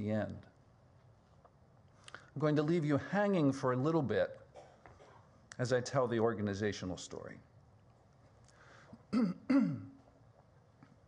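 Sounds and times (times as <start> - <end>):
man clearing his throat: 9.1 - 10.0.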